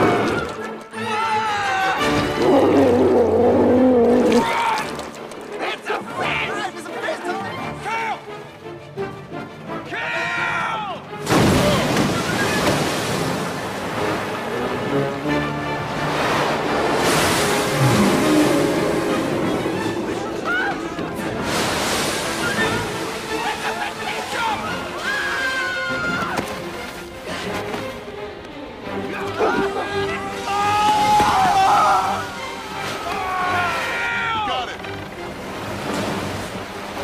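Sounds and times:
people shouting: 0:00.0 - 0:02.2, 0:20.1 - 0:21.1, 0:22.3 - 0:26.5, 0:29.1 - 0:34.8
rushing churning water: 0:01.6 - 0:37.0.

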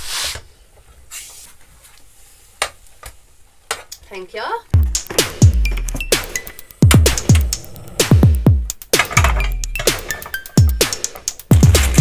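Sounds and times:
clicks and knocks of items: 0:09.0 - 0:10.5.

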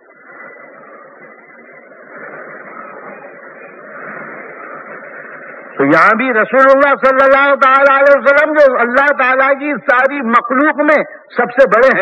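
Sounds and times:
murmur of audience voices: 0:00.0 - 0:05.9
man speaking loudly: 0:05.8 - 0:12.0.

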